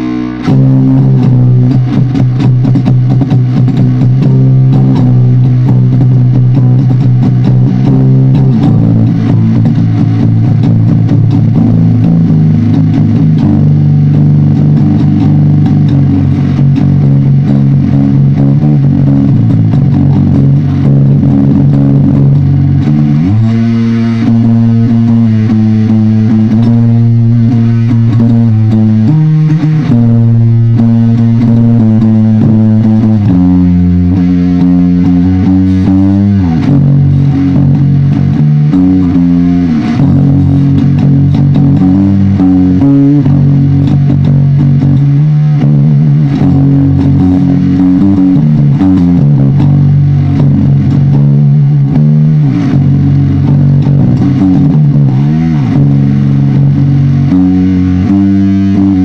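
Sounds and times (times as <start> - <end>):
distorted electric guitar chords: 0.0 - 59.0.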